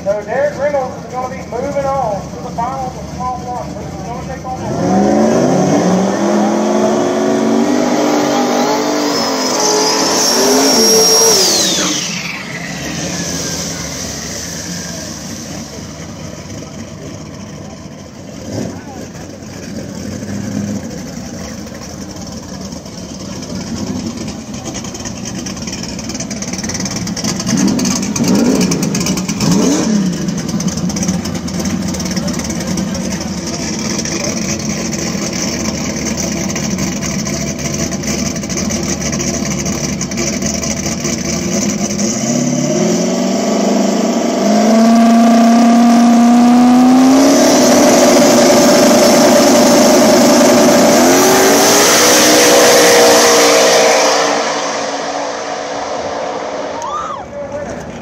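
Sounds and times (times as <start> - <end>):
drag car engines revving: 0.0 - 58.0.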